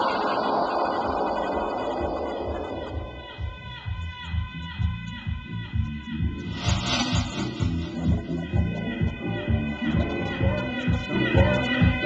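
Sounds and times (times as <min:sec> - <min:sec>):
deep house music: 0:00.0 - 0:12.0.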